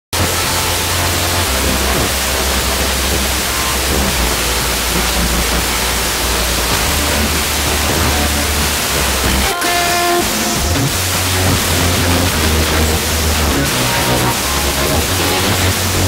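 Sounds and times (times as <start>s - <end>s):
radio static hiss: 0.1s - 16.0s.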